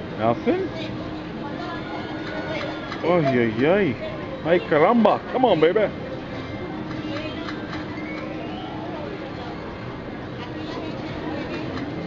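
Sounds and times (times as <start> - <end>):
casino background noise: 0.0 - 12.0.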